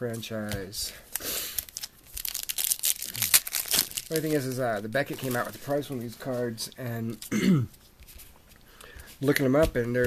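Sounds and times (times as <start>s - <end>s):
foil wrapper crinkling and tearing: 1.1s - 5.9s.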